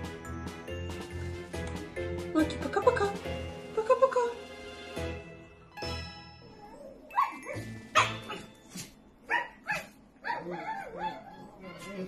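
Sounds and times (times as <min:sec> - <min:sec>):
comic background music: 0:00.0 - 0:08.7
dog barking: 0:09.3 - 0:11.4.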